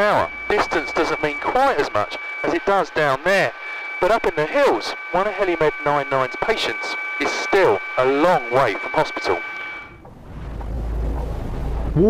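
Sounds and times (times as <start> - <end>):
wind rumbling on microphone: 9.9 - 12.0.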